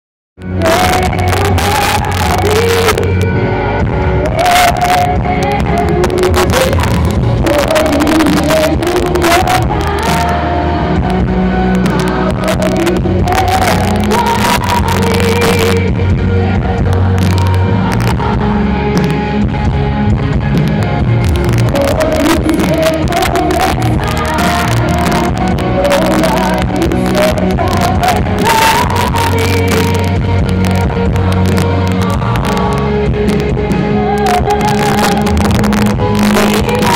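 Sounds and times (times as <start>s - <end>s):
woman singing lead vocal: 0.4s - 19.8s, 20.4s - 36.9s
gospel band through pa: 0.4s - 36.9s.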